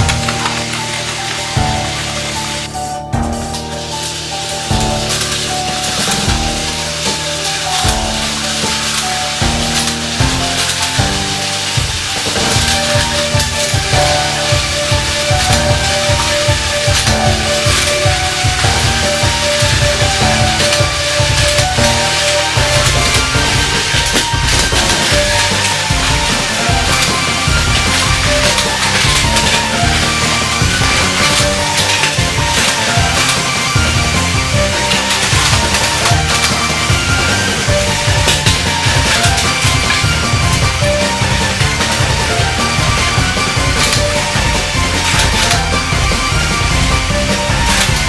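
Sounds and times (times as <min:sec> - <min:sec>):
background music with beat: 0:00.0 - 0:48.0
toy trains whirring and rattling: 0:00.0 - 0:48.0.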